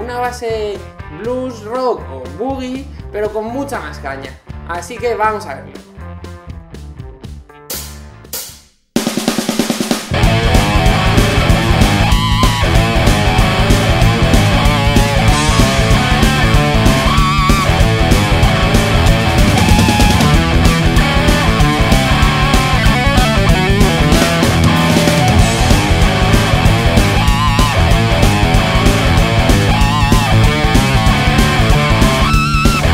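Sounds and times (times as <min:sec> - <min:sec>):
rock drum kit: 0:06.3 - 0:32.9
distorted electric guitar: 0:10.1 - 0:32.9.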